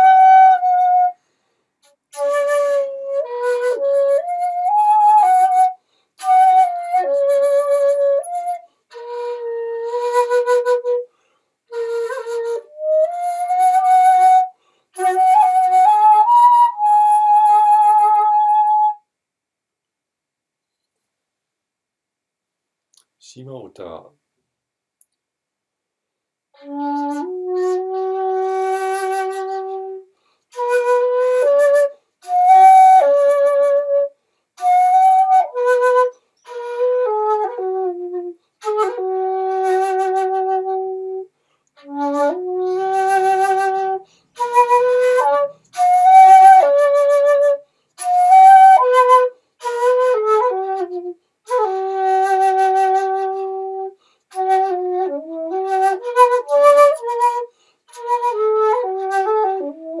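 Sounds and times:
shakuhachi flute playing: 0.0s - 19.1s, 26.6s - 60.0s.

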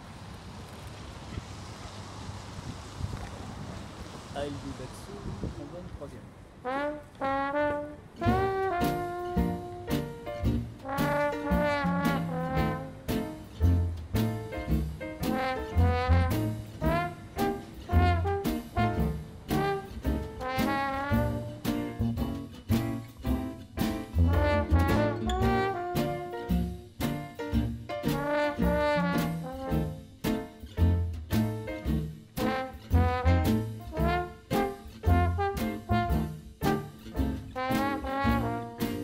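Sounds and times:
brass horns holding notes: 6.6s - 13.3s, 15.2s - 22.1s, 24.2s - 27.0s, 28.1s - 30.2s, 32.4s - 39.0s
trombone playing jazz melody: 6.6s - 39.0s
low bass line: 8.2s - 30.2s, 30.8s - 38.9s
drum strikes: 8.2s - 39.0s.

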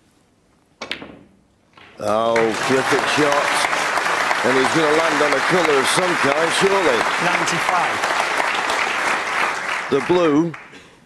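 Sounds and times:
billiard balls clicking: 0.8s - 2.2s.

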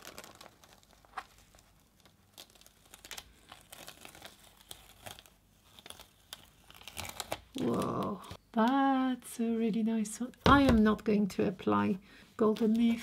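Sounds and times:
paper crinkling and peeling: 0.0s - 8.4s, 12.4s - 13.0s.

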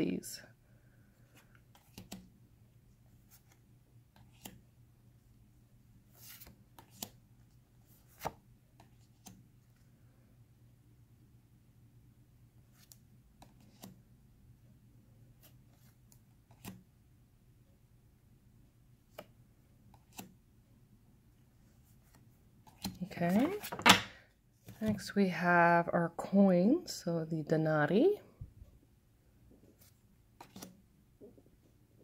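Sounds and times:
paper cards sliding and ticking: 29.8s - 30.8s.

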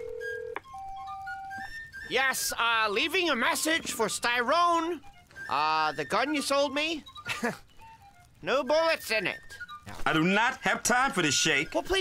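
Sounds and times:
telephone line click: 0.0s - 1.6s
telephone ringback tone: 0.0s - 1.7s.

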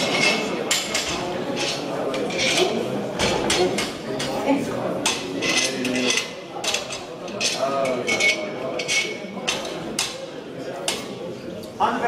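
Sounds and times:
indistinct echoing voices: 0.0s - 12.0s.

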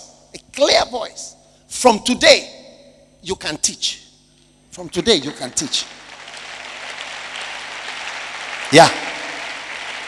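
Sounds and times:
congregation applauding: 4.8s - 10.0s.

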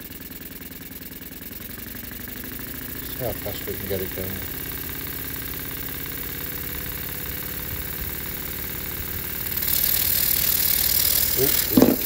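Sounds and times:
steam engine exhaust beats: 0.0s - 12.0s
loud hiss of escaping exhaust: 9.1s - 12.0s.

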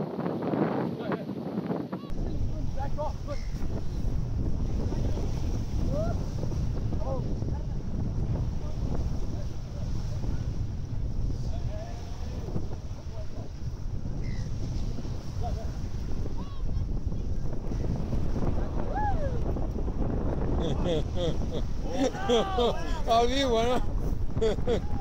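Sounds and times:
wind buffeting microphone: 0.0s - 25.0s
small waves washing ashore: 2.1s - 25.0s.

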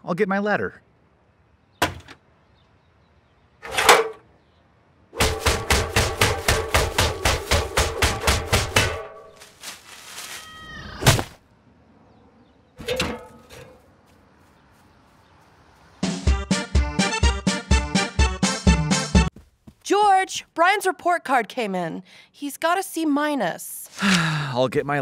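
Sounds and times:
ladder click: 3.6s - 4.2s, 12.8s - 13.8s.

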